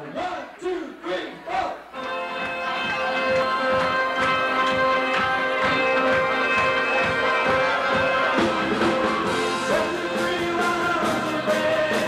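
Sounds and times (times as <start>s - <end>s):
lively room noise: 0.0s - 12.0s
band playing: 1.8s - 12.0s.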